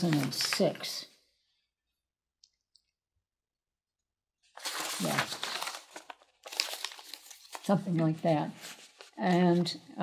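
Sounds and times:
paper rustling and crinkling: 0.0 - 1.0, 4.5 - 9.8.

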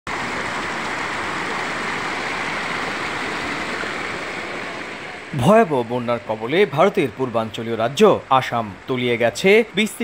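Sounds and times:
floodwater rushing: 0.1 - 10.0.

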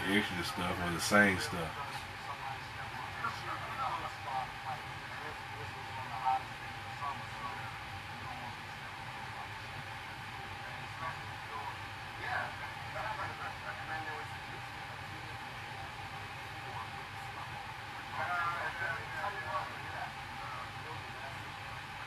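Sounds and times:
faint indistinct speech: 0.0 - 22.0
room noise hum and hiss: 0.0 - 22.0.

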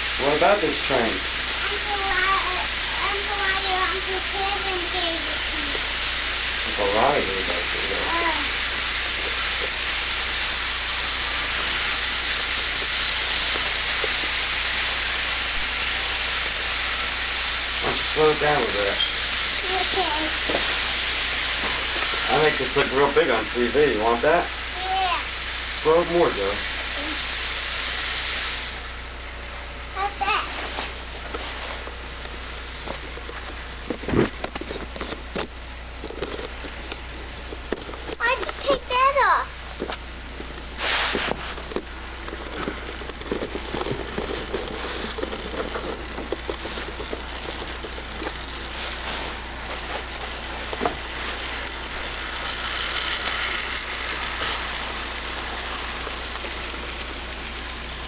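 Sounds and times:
toy train motor whirring: 0.0 - 58.0.

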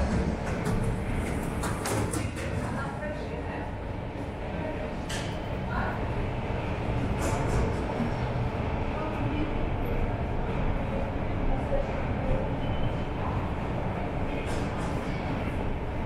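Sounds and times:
train rumbling in tunnel: 0.0 - 16.0
faint voices: 1.8 - 16.0.

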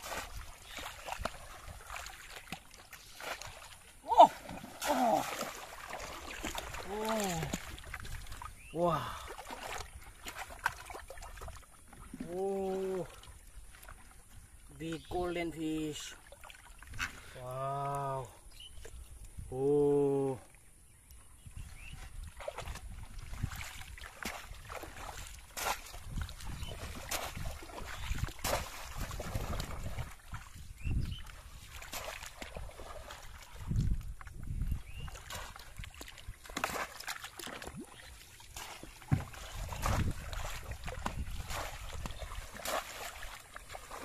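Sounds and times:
person wading through splashing water: 0.0 - 19.0, 21.6 - 44.0
loud splash: 3.2 - 7.9, 26.7 - 30.1, 38.6 - 44.0.

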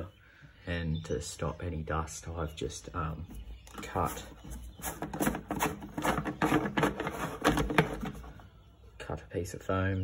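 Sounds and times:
plastic cap clicking and scraping: 3.7 - 8.3.

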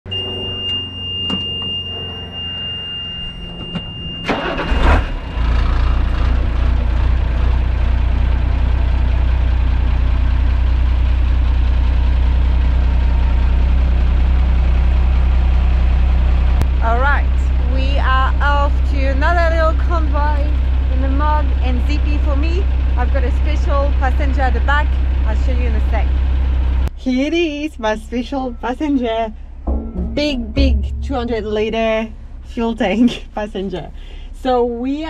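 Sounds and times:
high-pitched tone: 0.1 - 6.0, 28.4 - 32.7
diesel engine starting and idling: 0.1 - 35.0.

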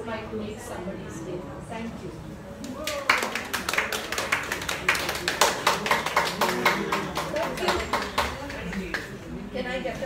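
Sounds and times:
people clapping: 2.6 - 9.3.

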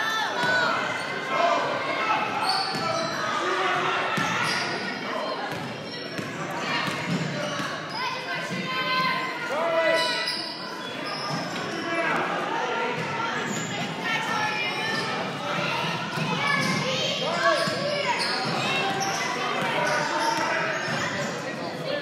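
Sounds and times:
voices echoing in gym: 0.0 - 22.0
sneakers squeaking: 2.2 - 9.2, 9.8 - 12.1, 12.9 - 22.0.

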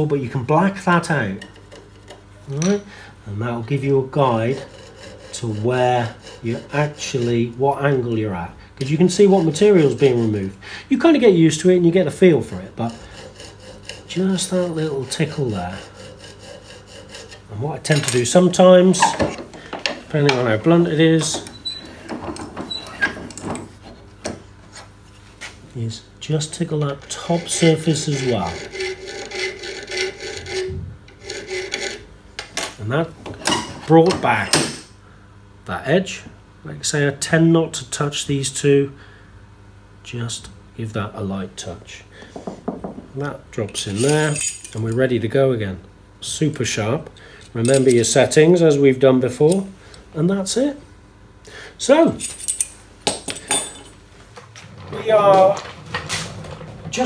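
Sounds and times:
file rubbing on metal: 4.1 - 10.6, 12.5 - 19.3, 27.0 - 32.1
tools knocking on wooden bench: 42.4 - 43.1
metallic ring: 43.8 - 44.8, 52.2 - 54.0.

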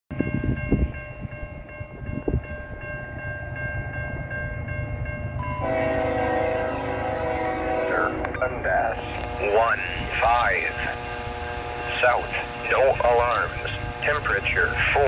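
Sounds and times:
low train rumble: 0.1 - 15.0
locomotive horn chord: 5.4 - 15.0.

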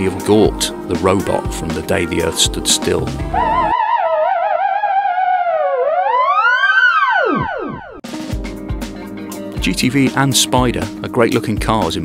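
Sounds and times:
wavering theremin-style music: 2.0 - 8.0.

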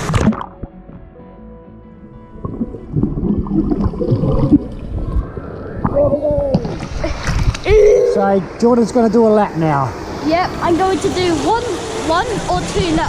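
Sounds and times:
underwater churning and bubbling: 0.0 - 0.9, 2.1 - 7.5.

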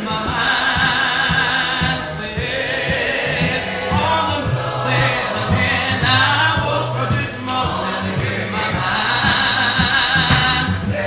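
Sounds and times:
a cappella hymn singing: 0.0 - 11.0.

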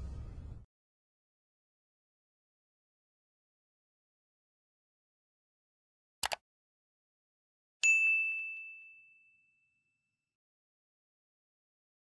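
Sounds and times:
bright bell ding: 7.8 - 10.0.

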